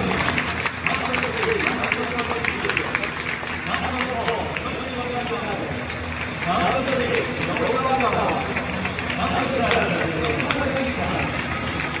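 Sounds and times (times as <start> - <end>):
crowd clapping: 0.0 - 12.0.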